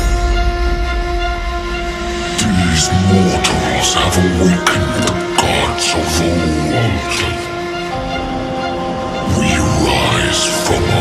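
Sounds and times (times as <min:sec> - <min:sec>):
horn-like synth chord: 0:00.0 - 0:11.0.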